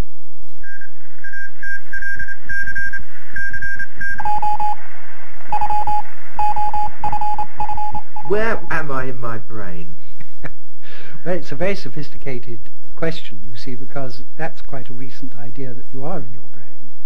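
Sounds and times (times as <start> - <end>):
electronic bleeping tones: 0.6 - 4.8, 5.5 - 8.8.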